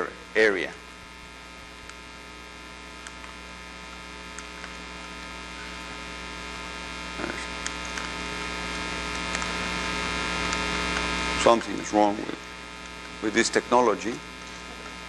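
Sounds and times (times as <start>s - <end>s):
electrical mains hum: 0.0s - 15.0s.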